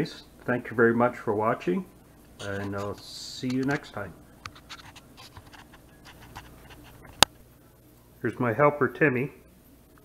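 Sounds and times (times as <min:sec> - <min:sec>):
small scratches and ticks: 0:02.4 - 0:07.3.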